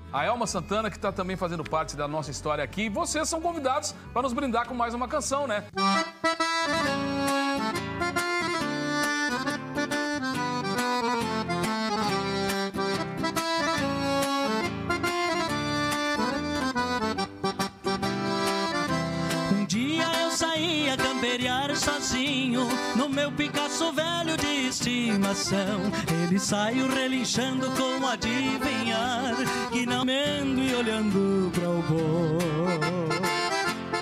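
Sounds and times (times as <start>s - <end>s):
accordion-led instrumental music: 0.0s - 34.0s
pulsing bass rhythm: 5.8s - 34.0s.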